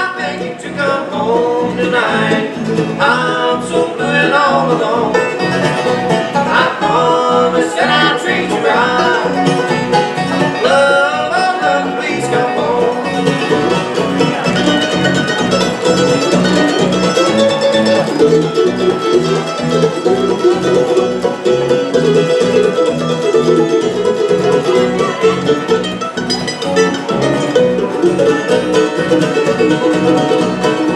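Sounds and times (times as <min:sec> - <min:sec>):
acoustic guitar: 0:00.0 - 0:30.9
banjo rolling: 0:00.0 - 0:30.9
mandolin: 0:00.0 - 0:30.9
upright bass beat: 0:00.1 - 0:30.9.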